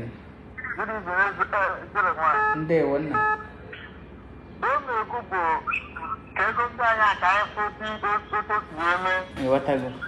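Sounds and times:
person speaking: 0:00.0 - 0:04.0, 0:04.6 - 0:10.0.

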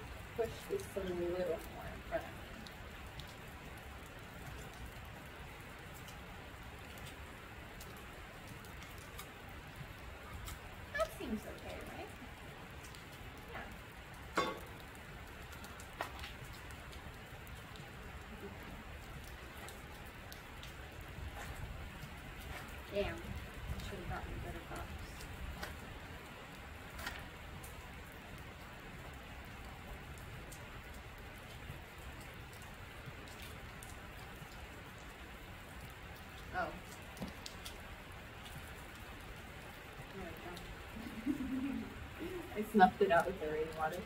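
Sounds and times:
rain on a metal roof: 0:00.0 - 0:44.0.

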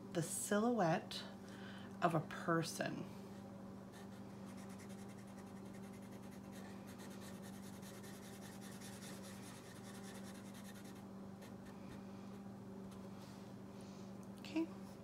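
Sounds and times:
steady low hum: 0:00.0 - 0:15.0
marker scratching on paper: 0:04.0 - 0:11.7.

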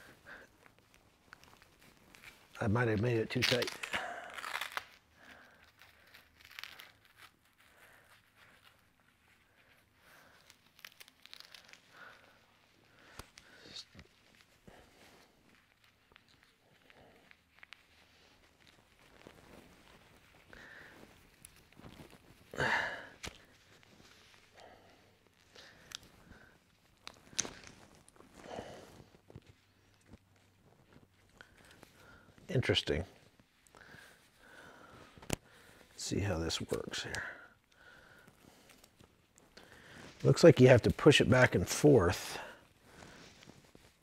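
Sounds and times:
strap rustling and clicking: 0:00.0 - 0:41.2.

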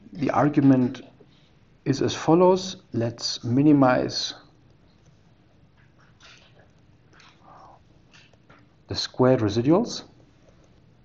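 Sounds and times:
person speaking: 0:00.0 - 0:04.6, 0:08.9 - 0:10.2
stylus scratching on tablet screen: 0:04.6 - 0:08.5.

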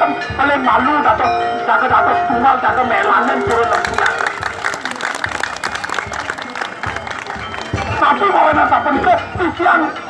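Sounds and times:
crowd noise: 0:01.5 - 0:10.0
audience clapping: 0:02.7 - 0:08.3.

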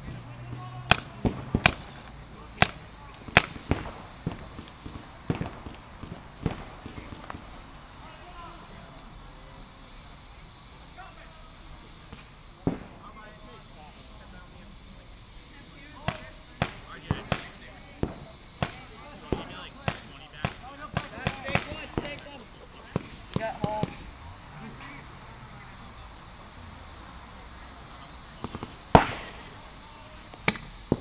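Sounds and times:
paintball markers firing: 0:00.9 - 0:07.7, 0:16.0 - 0:22.3, 0:22.9 - 0:24.1, 0:28.4 - 0:29.6, 0:30.3 - 0:31.0.

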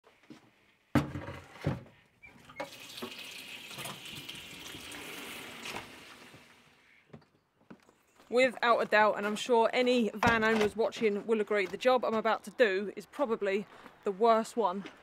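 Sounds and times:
tap water filling a plastic bucket: 0:02.5 - 0:06.5.

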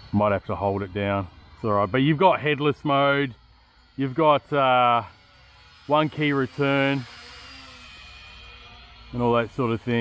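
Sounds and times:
toy quadcopter propellers whining: 0:00.0 - 0:10.0.

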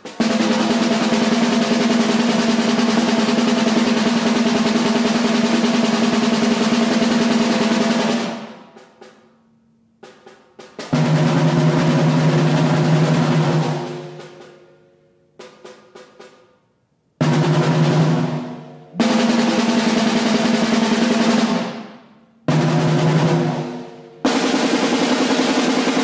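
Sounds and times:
light drum strokes: 0:00.0 - 0:16.6
drum roll: 0:00.0 - 0:26.0.

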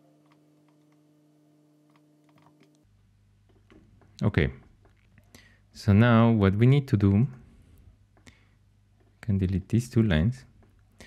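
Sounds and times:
faint low hum: 0:00.0 - 0:11.0
computer keyboard and mouse clicks: 0:01.9 - 0:02.8.

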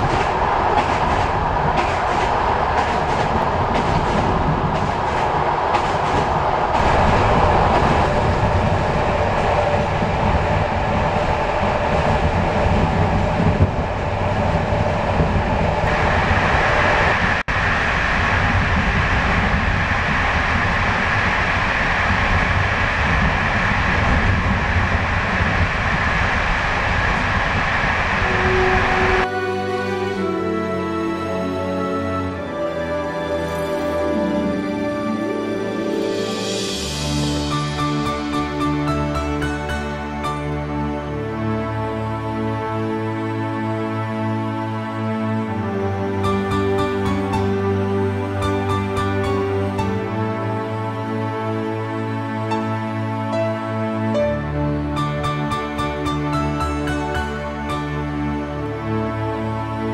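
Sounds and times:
train wheels rumbling on track: 0:00.0 - 0:29.3, 0:35.8 - 0:42.4, 0:45.5 - 0:59.9.

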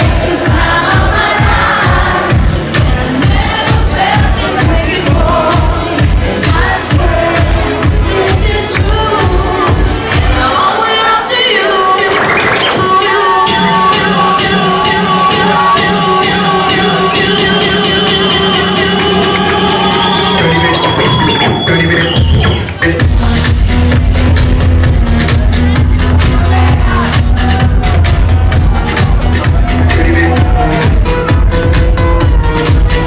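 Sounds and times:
kick drum beat: 0:00.0 - 0:10.3, 0:22.2 - 0:33.0
electronic dance music: 0:00.0 - 0:33.0.

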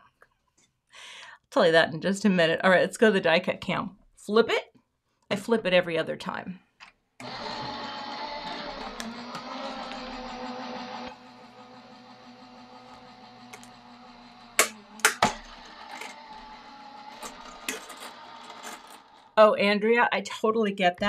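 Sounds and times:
die-cutting machine motor humming: 0:07.2 - 0:19.4.

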